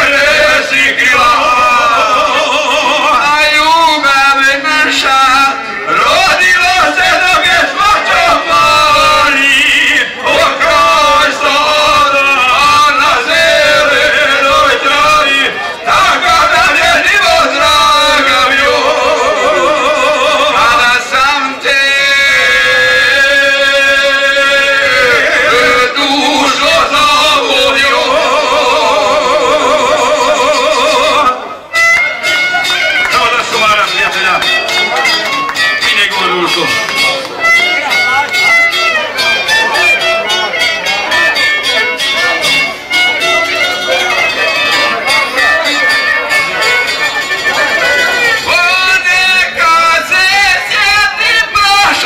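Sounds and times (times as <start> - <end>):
men singing folk music: 0.0 - 31.8, 43.3 - 52.0
violin melody: 31.4 - 52.0.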